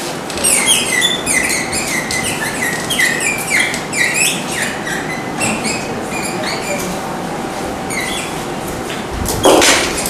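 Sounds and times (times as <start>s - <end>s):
marker squeaking on a whiteboard: 0.3s - 7.1s, 7.8s - 8.5s.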